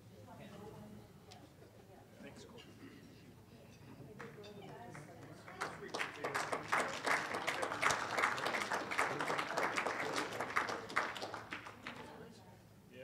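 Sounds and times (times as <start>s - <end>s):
audience applauding: 4.9s - 12.2s.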